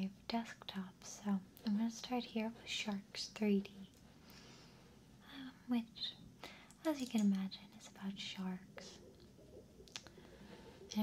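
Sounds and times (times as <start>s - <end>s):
water bubbling ambience: 6.3s - 11.0s.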